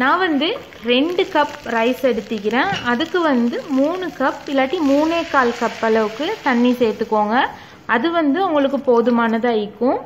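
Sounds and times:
woman talking: 0.0s - 10.0s
rice sizzling in a pan: 0.6s - 7.5s.

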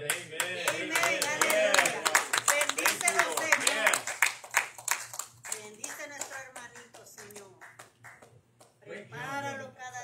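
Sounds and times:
congregation clapping: 0.0s - 8.8s.

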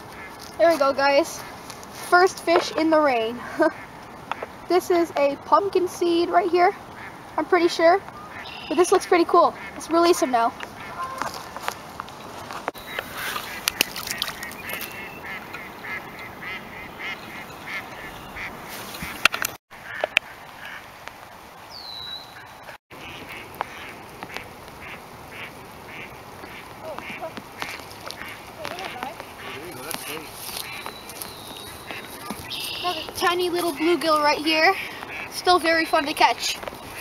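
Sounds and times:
ducks quacking: 0.0s - 11.6s, 12.8s - 20.9s, 22.1s - 37.0s
light rain: 19.0s - 37.0s.

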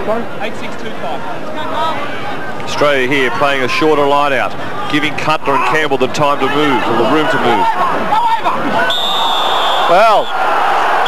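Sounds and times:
stadium crowd noise: 0.0s - 11.0s
referee's whistle blast: 8.8s - 10.4s.

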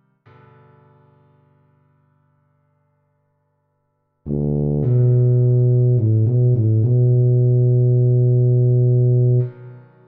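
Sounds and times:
tuba melody: 4.3s - 9.6s.

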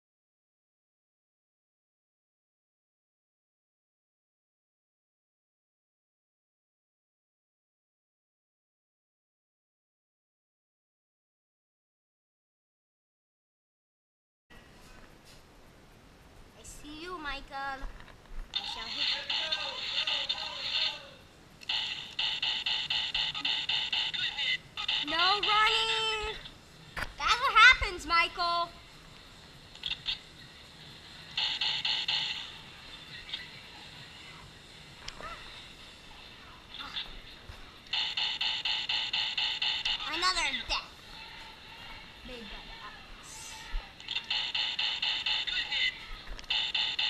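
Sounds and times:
laser tag gun electronic shots: 21.7s - 25.7s, 31.4s - 32.6s, 37.9s - 40.2s, 44.0s - 47.0s.

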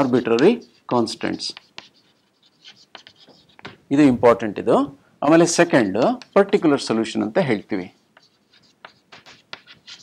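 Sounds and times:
chalk scratching on chalkboard: 0.0s - 3.8s, 5.5s - 10.0s.

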